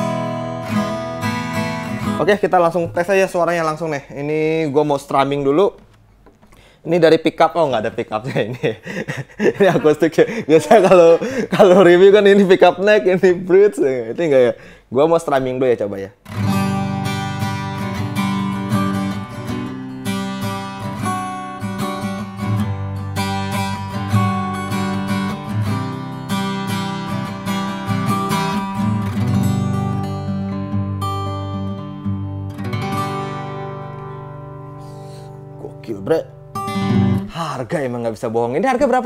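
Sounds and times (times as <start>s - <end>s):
acoustic guitar chords strummed: 0.0s - 2.2s, 16.2s - 37.3s.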